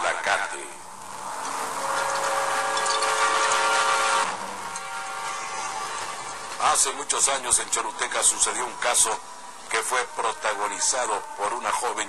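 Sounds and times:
steady hissing noise: 0.0s - 12.0s.

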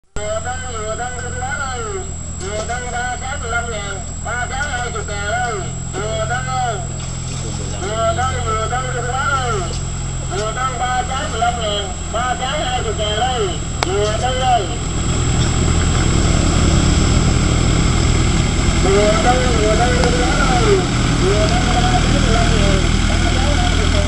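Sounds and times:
boat engine running: 0.0s - 24.0s.

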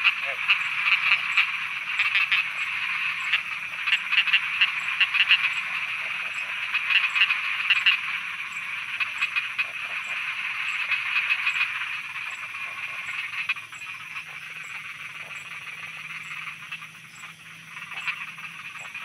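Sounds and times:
frogs croaking: 0.0s - 19.0s
rapid pulsed frog croaks: 0.0s - 19.0s.

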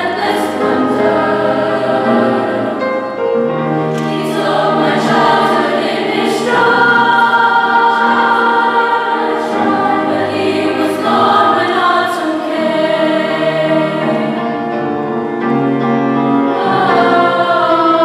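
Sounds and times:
women's choir singing: 0.0s - 15.1s, 16.2s - 18.0s
piano accompaniment: 0.0s - 18.0s.

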